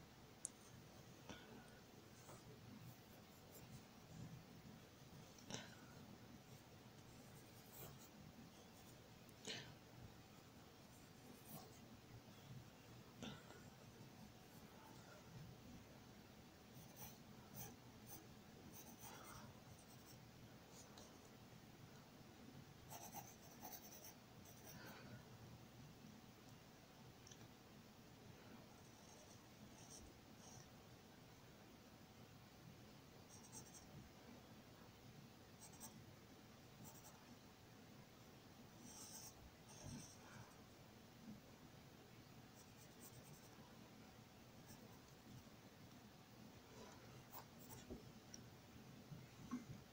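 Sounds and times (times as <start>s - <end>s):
pencil scratching on paper: 16.8s - 20.9s, 22.9s - 24.8s, 35.6s - 35.9s, 38.8s - 40.2s, 42.6s - 43.5s.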